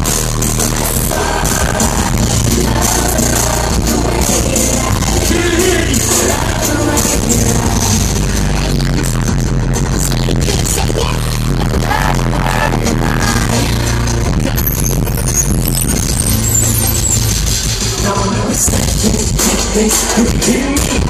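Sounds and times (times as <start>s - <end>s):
low bass line: 0.0s - 20.7s
live concert music over pa: 0.0s - 21.0s.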